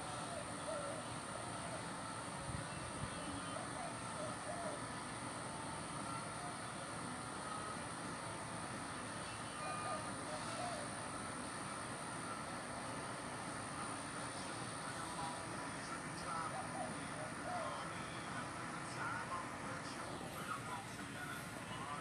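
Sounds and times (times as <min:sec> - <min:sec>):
outdoor background noise: 0:00.0 - 0:22.0.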